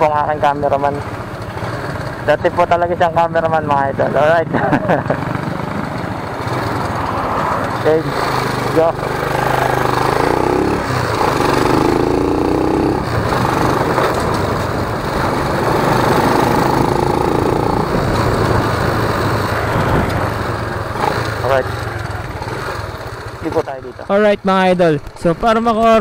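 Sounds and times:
small motorcycle engine running: 0.2 - 24.0
wind rushing over microphone: 9.2 - 20.8.

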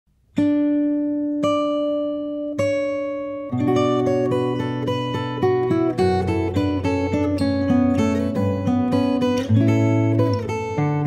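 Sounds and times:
acoustic guitar fingerpicking: 0.2 - 11.0.

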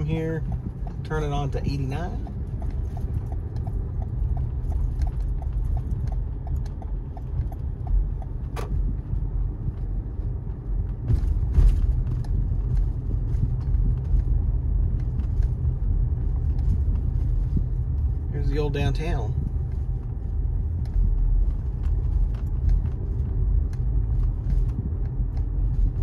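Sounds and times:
car cabin road rumble: 0.0 - 26.0
turn signal ticking: 0.0 - 26.0.

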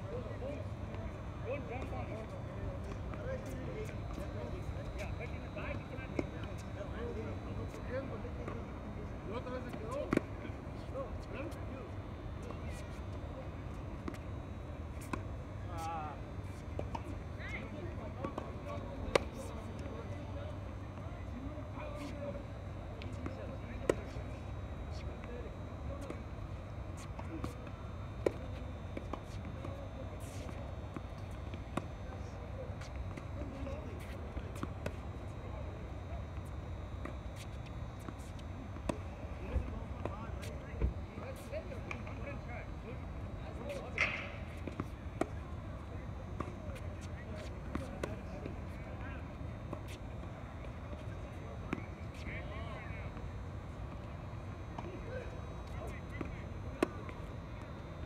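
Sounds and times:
faint voices talking: 0.0 - 58.0
tennis balls struck by racquets: 43.6 - 48.6.

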